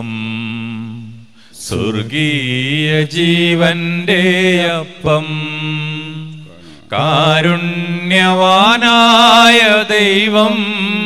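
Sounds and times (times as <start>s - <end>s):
person singing a hymn: 0.0s - 11.0s.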